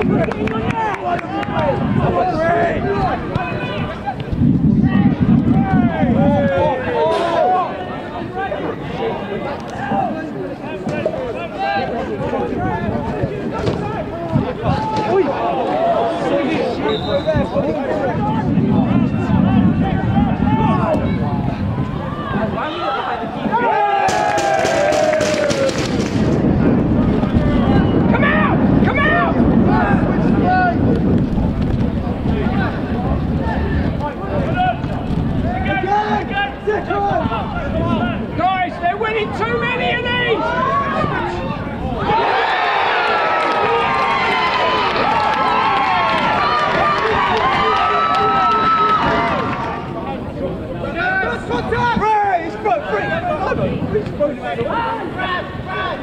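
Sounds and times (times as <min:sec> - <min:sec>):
footballers shouting: 0:00.0 - 0:26.4, 0:27.0 - 0:31.1, 0:31.8 - 0:56.0.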